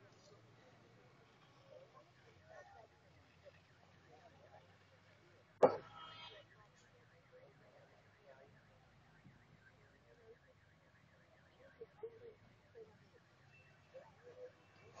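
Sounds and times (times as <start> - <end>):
faint distant voices: 0.0 - 15.0.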